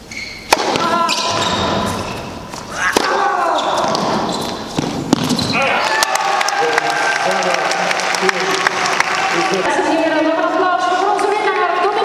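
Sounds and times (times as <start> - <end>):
tennis ball impact: 0.5 - 5.6.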